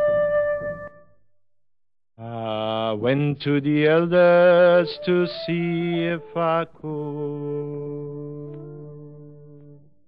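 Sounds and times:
flute note: 0.0s - 1.2s, 4.7s - 10.0s.

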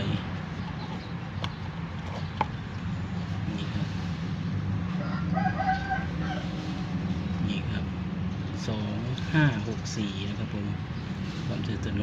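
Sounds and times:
rooster crowing: 4.9s - 6.9s.

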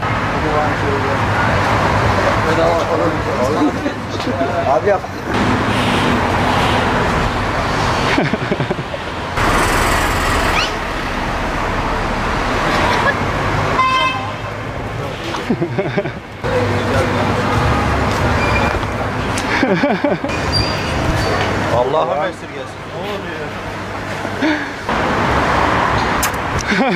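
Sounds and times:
chatter of passers-by: 0.0s - 24.9s
traffic noise: 0.0s - 26.9s.

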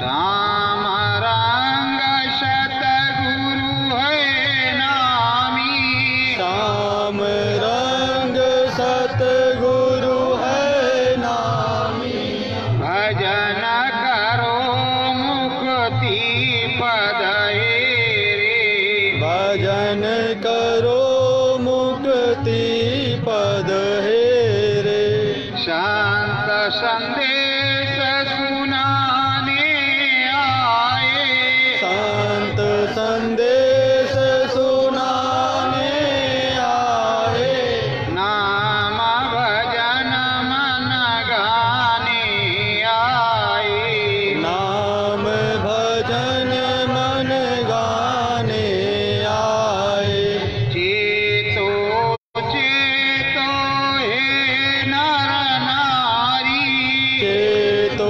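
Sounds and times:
person singing devotional chant: 0.0s - 58.0s.

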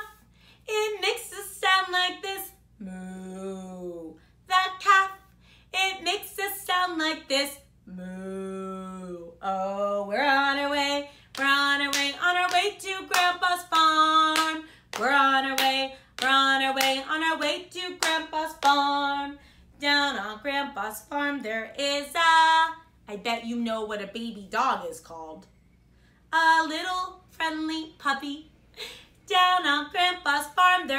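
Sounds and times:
woman singing unaccompanied: 0.0s - 25.2s, 26.3s - 28.5s, 29.2s - 30.9s.

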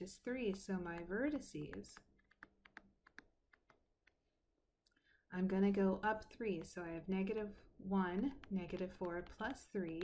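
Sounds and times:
stylus tapping on tablet screen: 0.2s - 4.5s, 6.0s - 10.0s.

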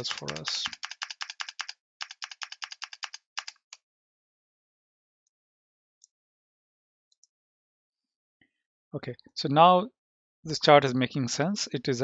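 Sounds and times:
fast typing on computer keyboard: 0.0s - 3.8s.

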